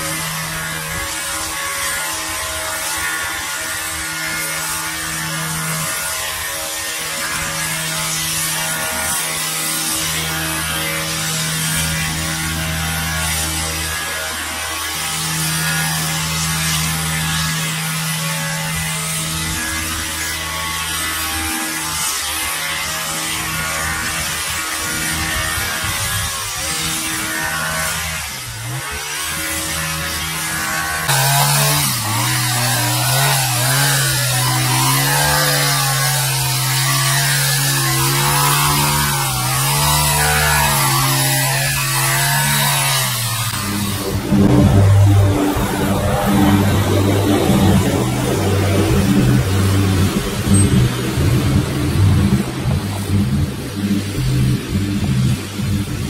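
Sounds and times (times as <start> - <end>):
hedge trimmer engine buzzing: 0.0 - 56.0.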